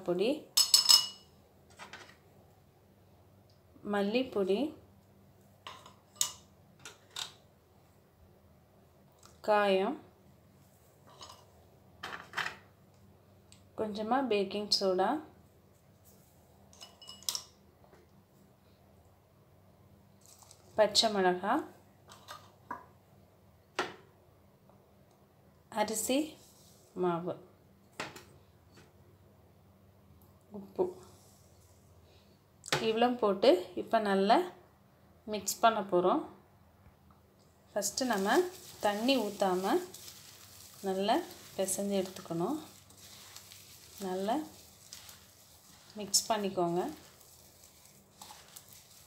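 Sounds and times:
person speaking: 37.7 - 45.1, 45.8 - 47.4
hand squishing batter: 37.7 - 49.0.

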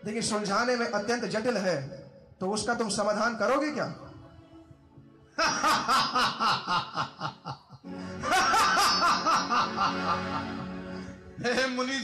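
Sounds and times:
background music: 0.0 - 12.0
person laughing: 5.4 - 10.6.

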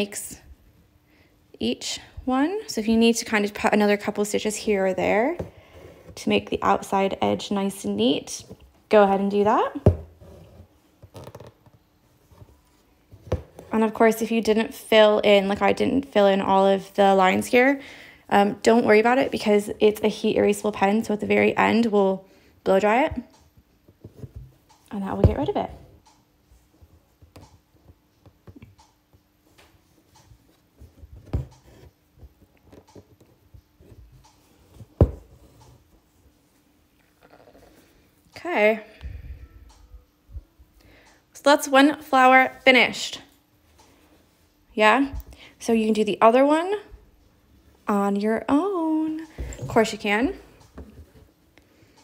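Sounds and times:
soft handling noise: 49.1 - 51.6.

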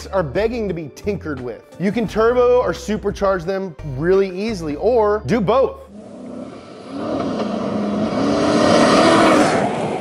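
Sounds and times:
car engine revving past: 5.9 - 10.0.

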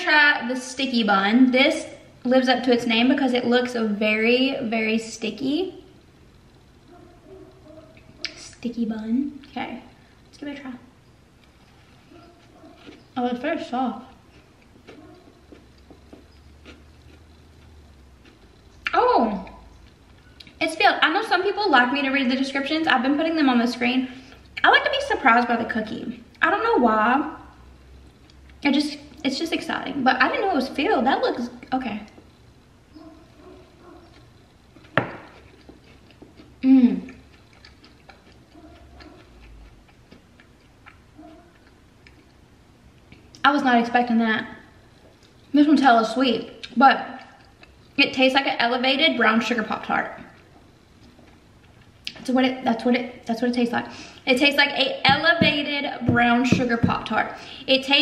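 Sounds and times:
chewing with mouth clicks: 11.4 - 13.2, 14.1 - 20.6, 31.6 - 42.4, 46.5 - 48.0, 50.2 - 52.2.

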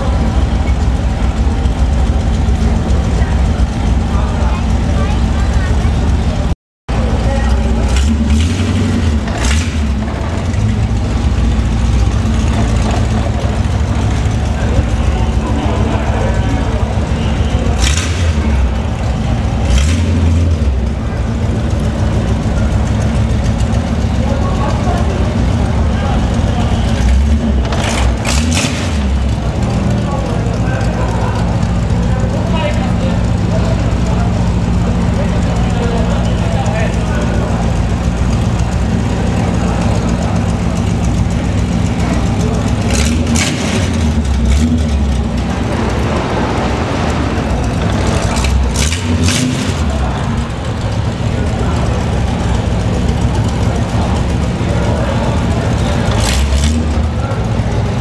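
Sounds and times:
car engine idling: 0.0 - 58.0
engine revving: 0.0 - 58.0.

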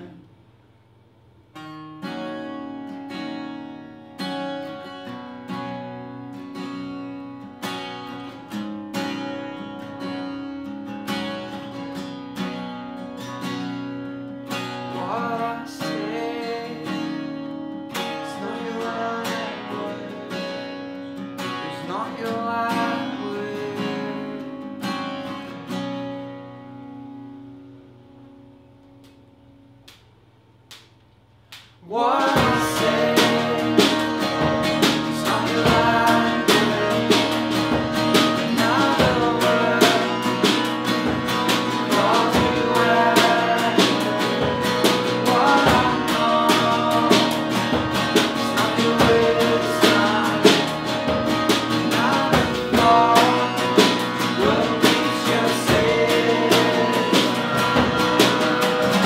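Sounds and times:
strummed acoustic guitars: 1.5 - 29.2, 31.9 - 59.0
accordion chords: 32.4 - 59.0.

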